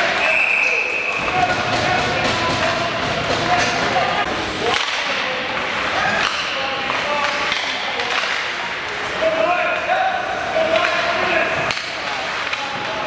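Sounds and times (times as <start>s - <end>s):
hockey sticks and puck clacking: 0.0s - 13.0s.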